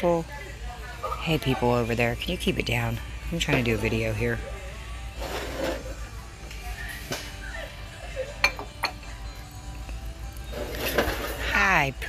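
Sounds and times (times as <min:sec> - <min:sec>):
faint background music: 0:00.0 - 0:12.0
dishes clinking: 0:08.3 - 0:09.2.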